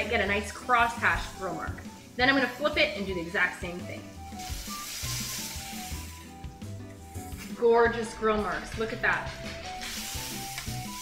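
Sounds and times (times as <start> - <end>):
light background music: 0.0 - 11.0
chicken sizzling on grill: 0.6 - 6.4, 9.7 - 11.0.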